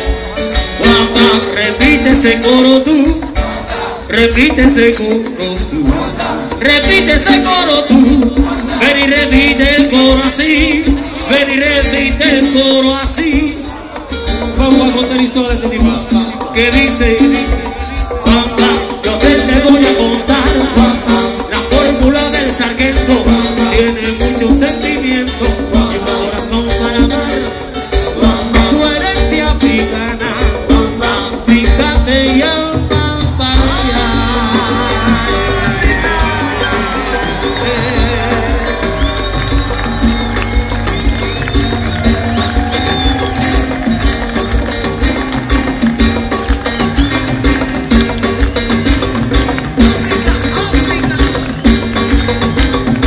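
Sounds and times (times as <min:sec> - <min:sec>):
live band playing latin music: 0:00.0 - 0:53.0
steady drum beat: 0:00.0 - 0:53.0.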